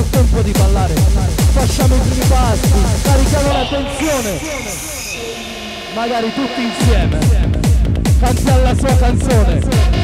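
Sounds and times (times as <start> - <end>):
techno music breakdown: 0.0 - 10.0.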